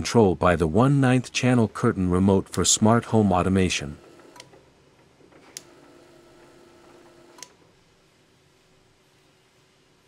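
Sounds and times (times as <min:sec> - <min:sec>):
curtain motor humming: 0:03.7 - 0:04.5, 0:05.4 - 0:07.5
motor clicks: 0:04.0 - 0:04.6, 0:05.4 - 0:07.6.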